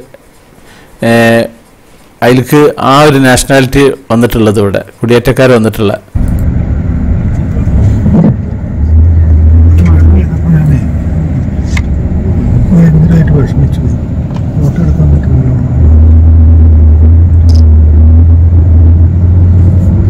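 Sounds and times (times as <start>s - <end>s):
vehicle engine rumbling: 6.2s - 20.0s.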